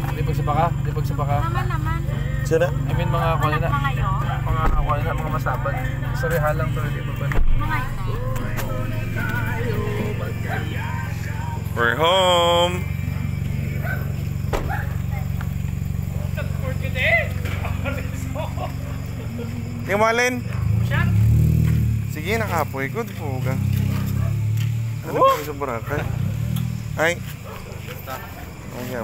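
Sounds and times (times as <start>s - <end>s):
people calling out: 0.0s - 21.2s, 23.6s - 25.9s
steady low hum: 0.0s - 21.2s.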